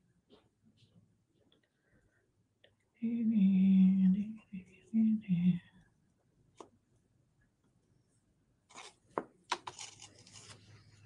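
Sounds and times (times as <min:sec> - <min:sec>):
beads rustling on paper plate: 0:08.7 - 0:10.8.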